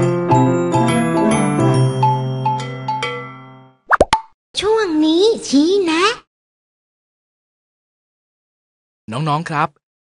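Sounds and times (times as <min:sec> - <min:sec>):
rising pop sound effects: 0:03.9 - 0:04.4.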